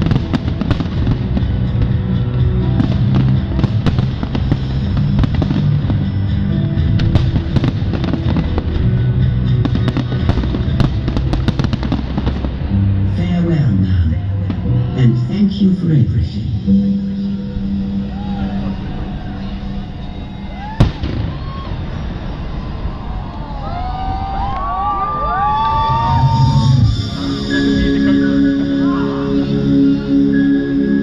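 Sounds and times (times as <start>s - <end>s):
fireworks bangs and crackles: 0.0s - 15.7s, 18.2s - 28.2s
loud music over speakers: 26.0s - 31.0s.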